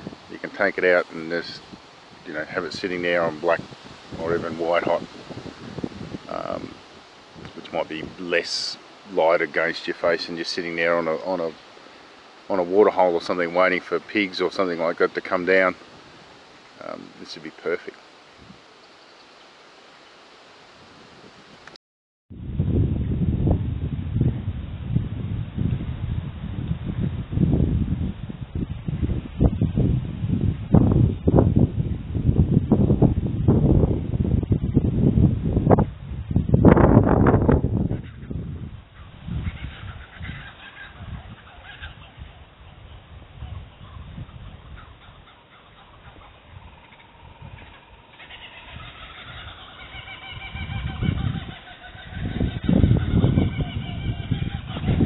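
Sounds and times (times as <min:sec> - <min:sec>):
wind buffeting microphone: 0:00.0 - 0:10.2, 0:18.4 - 0:18.7, 0:22.3 - 0:55.0
bird calling: 0:18.7 - 0:20.2, 0:37.9 - 0:55.0.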